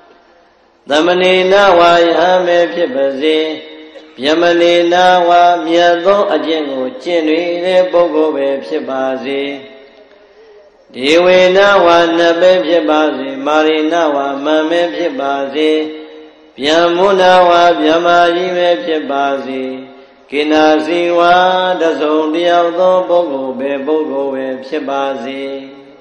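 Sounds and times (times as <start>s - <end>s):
person chanting: 0.9s - 26.0s.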